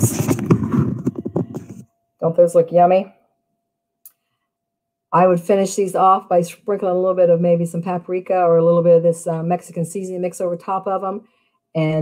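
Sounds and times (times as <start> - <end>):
device handling knocks and rubbing: 0.0 - 1.9.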